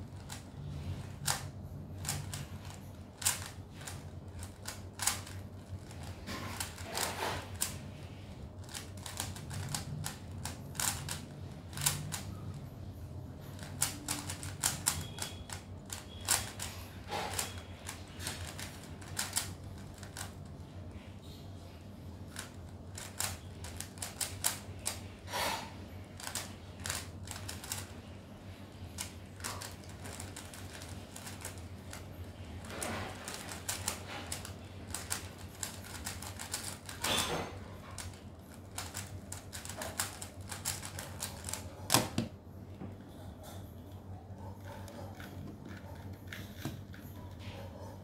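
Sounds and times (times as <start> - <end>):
speed cube clicking turns: 0.0 - 7.8, 8.6 - 12.4, 13.5 - 16.7, 17.3 - 20.5, 22.3 - 25.0, 26.2 - 27.9, 29.0 - 37.2, 38.0 - 41.8
speed cube layers clicking: 8.6 - 12.3, 33.3 - 37.0.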